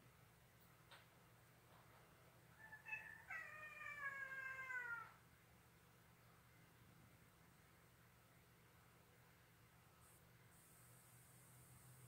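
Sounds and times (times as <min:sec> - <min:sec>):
cat meowing: 0:02.6 - 0:05.2.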